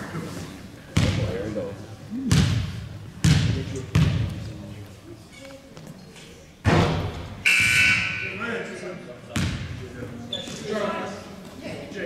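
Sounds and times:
voices in a gym: 0:00.0 - 0:12.0
basketball thud: 0:02.3 - 0:04.3, 0:09.4 - 0:09.7
referee whistle blast: 0:07.4 - 0:08.4.

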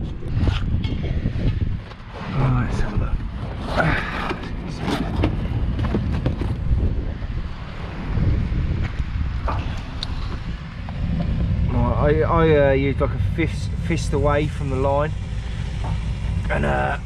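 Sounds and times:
low rumble: 0:00.0 - 0:17.0.

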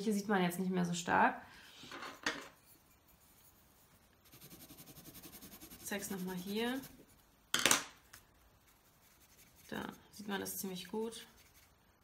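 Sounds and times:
pencil shading on paper: 0:02.9 - 0:07.2, 0:08.6 - 0:10.2.

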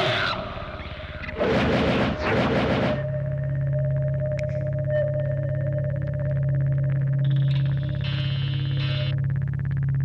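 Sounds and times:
electronic drone: 0:00.4 - 0:10.0.

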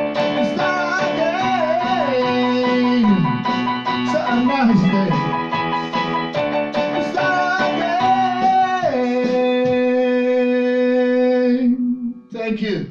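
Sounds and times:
electronic keyboard playing: 0:00.0 - 0:12.3.

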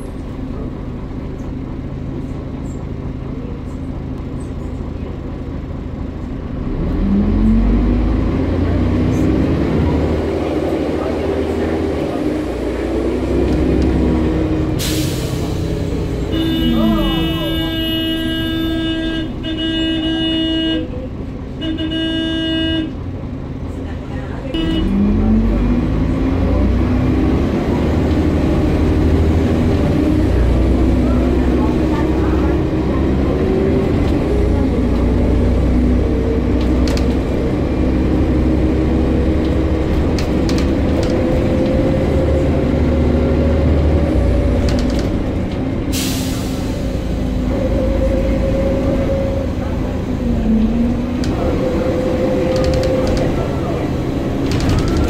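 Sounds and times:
bus engine rumbling: 0:00.0 - 0:55.0.

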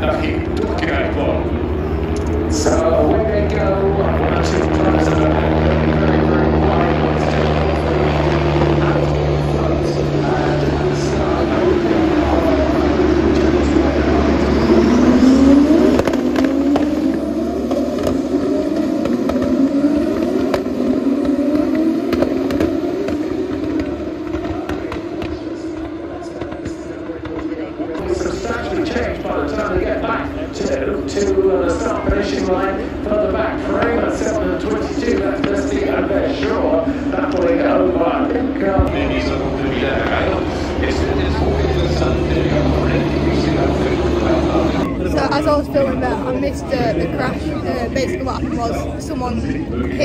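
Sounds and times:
race car engines: 0:00.0 - 0:50.0.

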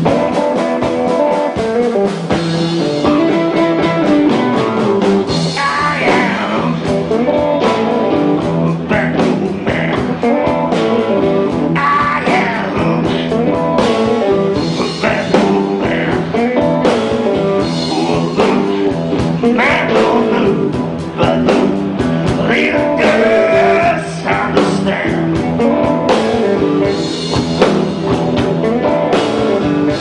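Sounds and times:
electric blues band playing: 0:00.0 - 0:30.0
lead vocalist singing: 0:05.3 - 0:27.3.

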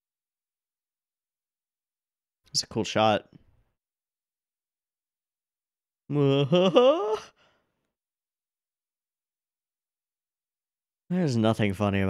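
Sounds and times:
man laughing: 0:06.1 - 0:07.4.

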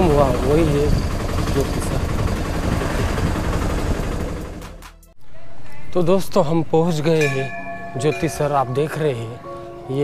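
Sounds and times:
road and wind noise: 0:00.0 - 0:04.8
auto-rickshaw engine running: 0:00.0 - 0:05.0.

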